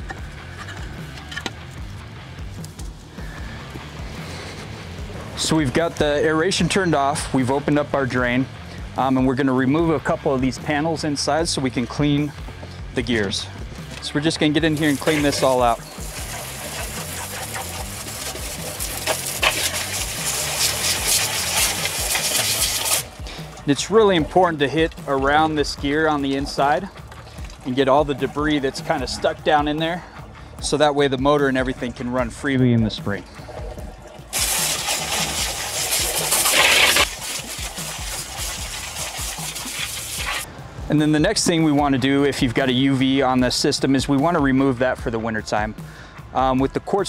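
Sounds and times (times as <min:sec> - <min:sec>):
hose spray hissing and splashing: 0:14.5 - 0:29.6, 0:33.4 - 0:40.5.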